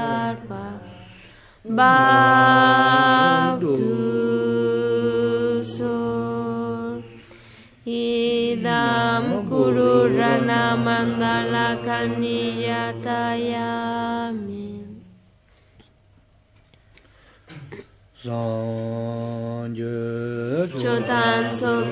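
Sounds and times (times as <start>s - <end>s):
mantra chanting in sustained notes: 0.0s - 15.2s, 18.2s - 21.9s.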